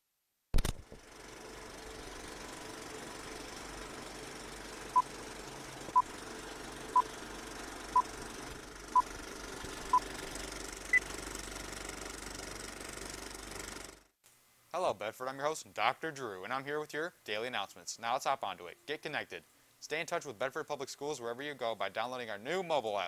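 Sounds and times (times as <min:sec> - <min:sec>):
film projector rattling whir: 0:00.6 - 0:14.1.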